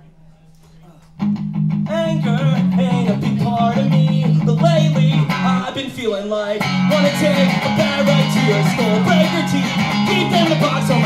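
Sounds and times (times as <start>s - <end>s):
electric guitar strummed chords: 1.2s - 5.9s, 6.5s - 11.0s.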